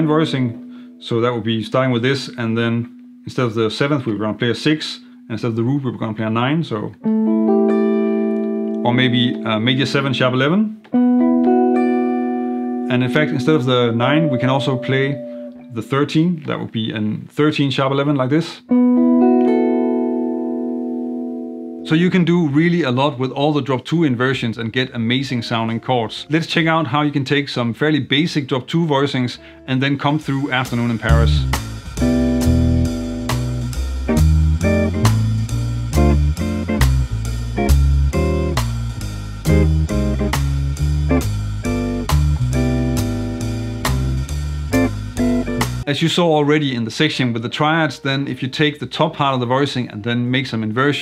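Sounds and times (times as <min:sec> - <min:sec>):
jazz guitar chord ringing: 0:00.0 - 0:16.2, 0:18.7 - 0:21.9, 0:29.4 - 0:45.9
walking bass: 0:00.0 - 0:16.8, 0:29.2 - 0:46.9
drums with steady cymbal beat: 0:30.2 - 0:45.9.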